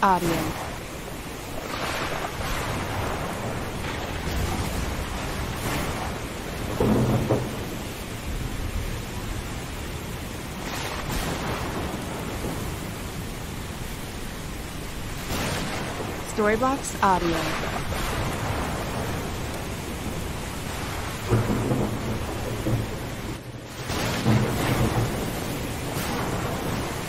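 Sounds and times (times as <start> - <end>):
steady rain: 0.0 - 27.0
rumbling thunder: 0.5 - 14.0, 14.8 - 16.4, 17.5 - 27.0.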